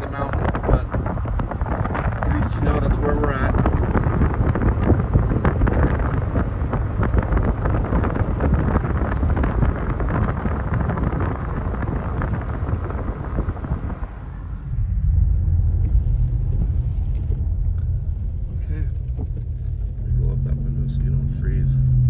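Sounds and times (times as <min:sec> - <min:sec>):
car engine rumble: 0:00.0 - 0:22.0
road and tyre noise: 0:00.0 - 0:22.0.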